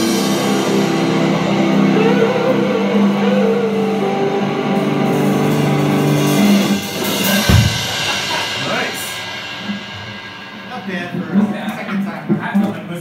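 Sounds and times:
ringing guitar chords: 0.0s - 8.5s
drum hit with cymbal crash: 5.9s - 12.0s.

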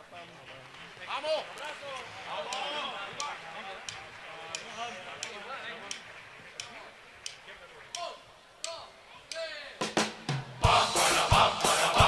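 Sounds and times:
steady ticks: 1.6s - 9.6s.

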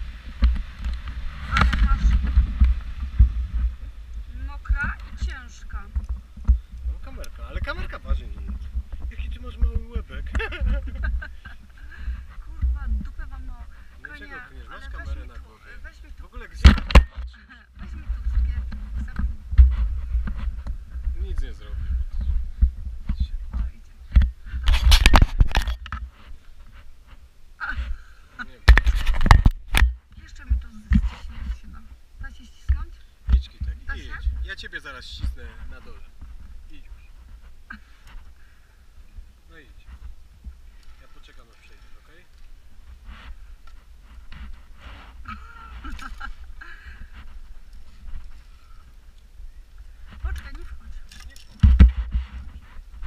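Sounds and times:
camera handling rumble: 22.1s - 26.8s, 28.6s - 30.0s, 40.0s - 49.3s, 50.0s - 53.0s.

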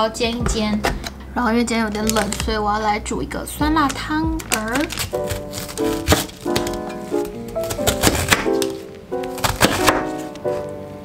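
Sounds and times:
background music: 0.0s - 11.0s
knife chopping cabbage on board: 4.9s - 6.8s, 7.6s - 10.3s.

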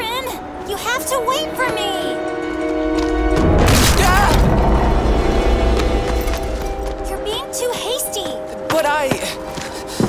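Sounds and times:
orchestral score: 0.0s - 10.0s
deep heavy rumble: 2.7s - 7.3s.

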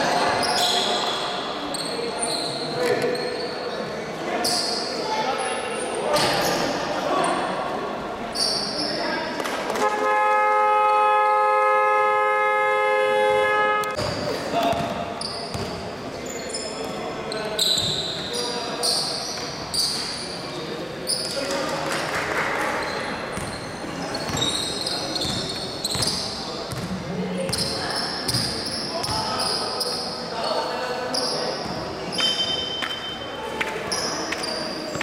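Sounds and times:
sneakers squeaking: 0.0s - 7.6s, 8.2s - 9.8s, 13.9s - 21.7s, 22.7s - 35.0s
basketball game horn: 9.8s - 14.0s.

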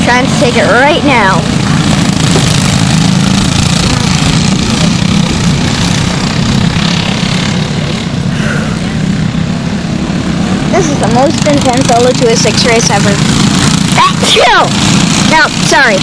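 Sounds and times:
kart engines droning: 0.0s - 16.0s.

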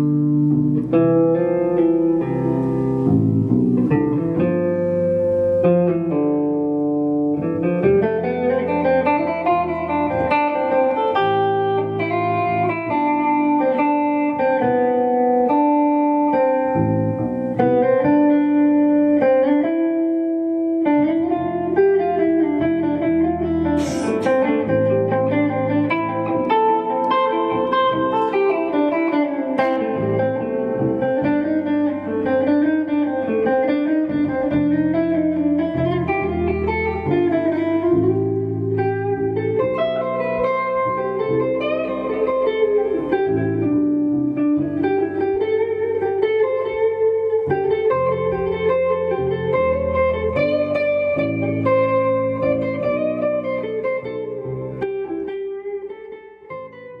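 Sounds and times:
electric guitar: 0.0s - 57.0s.

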